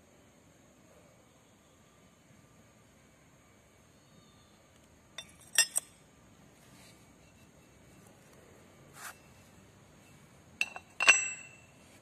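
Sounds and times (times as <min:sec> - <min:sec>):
metal gears clinking: 0:10.6 - 0:11.7.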